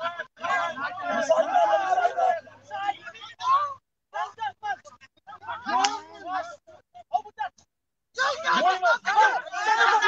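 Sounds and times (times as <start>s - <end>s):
voices shouting: 0.0s - 10.0s.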